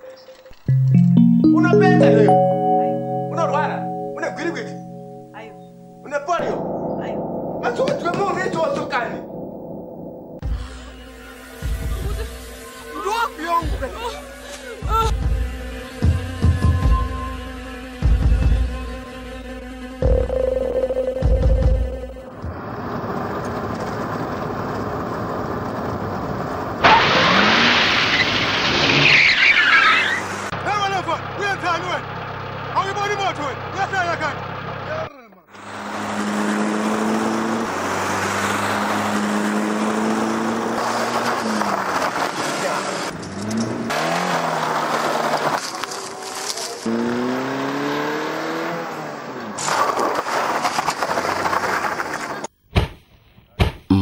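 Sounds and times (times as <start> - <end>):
car engine: 9.1 - 10.4, 31.2 - 49.6.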